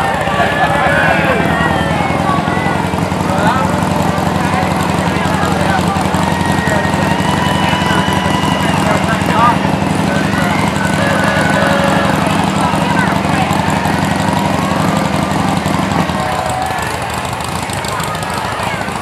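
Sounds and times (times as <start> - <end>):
crowd chatter: 0.0 - 19.0
truck engine running low: 0.0 - 19.0.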